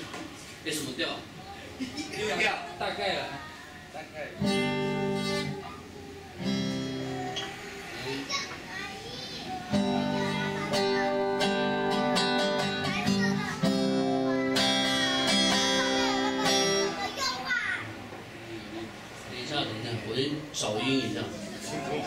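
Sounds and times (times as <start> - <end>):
acoustic guitar strumming: 4.4 - 7.7, 9.6 - 17.7.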